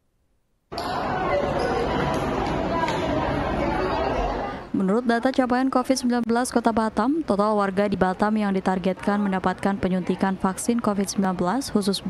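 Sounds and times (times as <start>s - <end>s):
crowd chattering in a hall: 0.7s - 5.5s, 7.6s - 12.0s.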